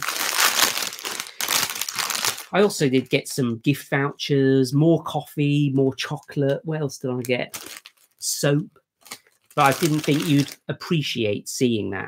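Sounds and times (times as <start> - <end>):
plastic bag crinkling: 0.0 - 3.1, 7.5 - 8.2, 9.0 - 10.6.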